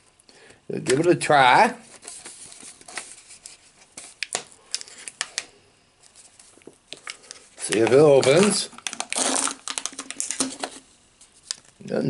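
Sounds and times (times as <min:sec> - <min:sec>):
fingers scratching foil seal: 0:07.7 - 0:10.5.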